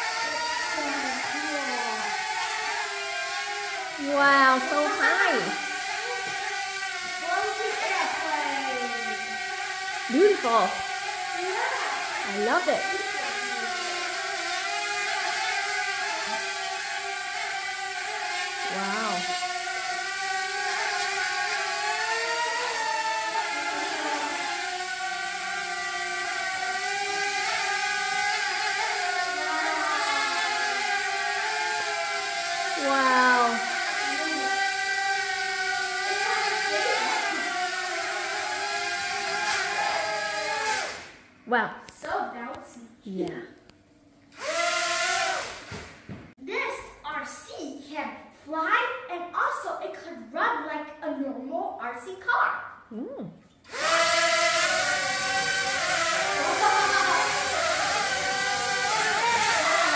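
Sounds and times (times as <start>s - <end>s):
drone propellers whining: 0.0s - 41.2s, 53.7s - 59.9s.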